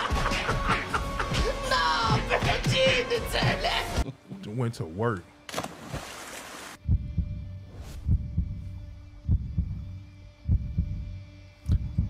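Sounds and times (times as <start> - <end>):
water splash: 5.5 - 6.8
deep booming beats: 6.8 - 12.0.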